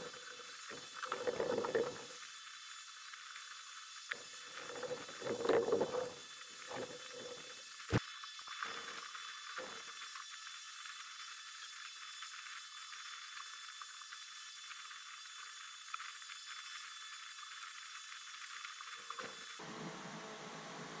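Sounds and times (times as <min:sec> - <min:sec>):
thin steady whine: 0:00.0 - 0:21.0.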